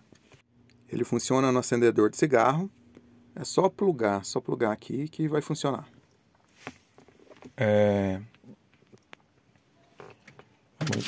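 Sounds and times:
man speaking: 0.9s - 2.7s, 3.4s - 5.9s, 7.6s - 8.4s
faint rustle: 6.4s - 7.6s.

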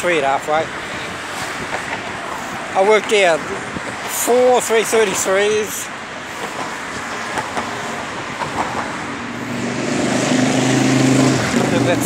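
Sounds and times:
rush of cars: 0.0s - 12.0s
heavy vehicle engine hum: 5.1s - 12.0s.

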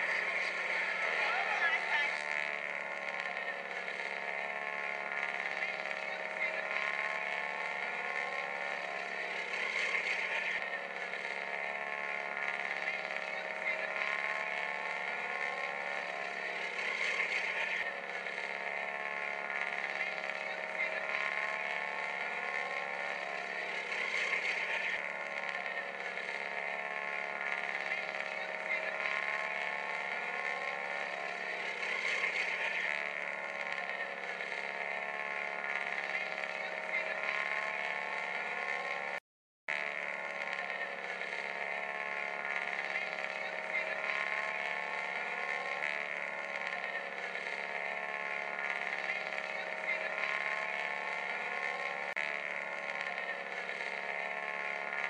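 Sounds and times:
biplane engines droning overhead: 0.0s - 55.0s.

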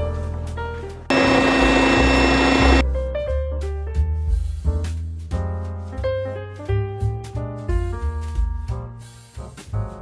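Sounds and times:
food processor motor whirring: 1.1s - 2.8s.

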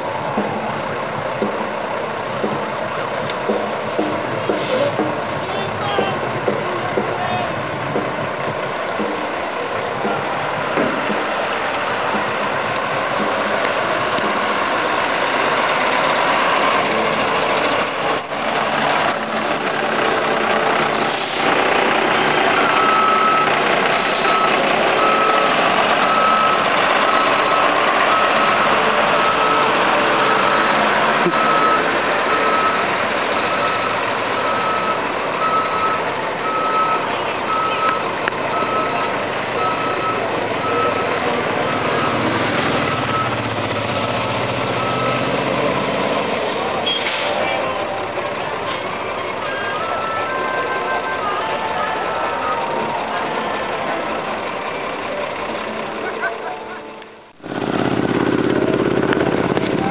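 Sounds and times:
bus engine running: 0.0s - 59.9s
reversing beep: 22.2s - 48.0s, 49.2s - 55.2s.

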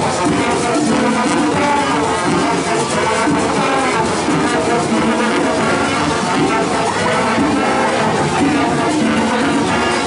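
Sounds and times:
horns holding notes: 0.0s - 10.0s
marching band playing: 0.0s - 10.0s
steady drum beat: 0.0s - 10.0s.

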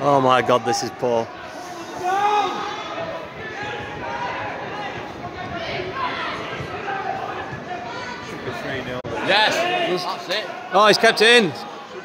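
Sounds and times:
murmur of crowd voices: 0.0s - 12.0s.

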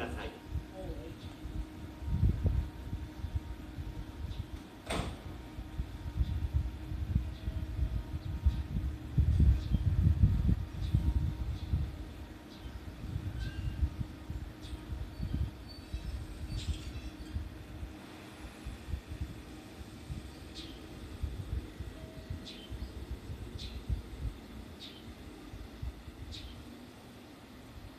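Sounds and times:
electric train rumble: 0.0s - 27.9s.

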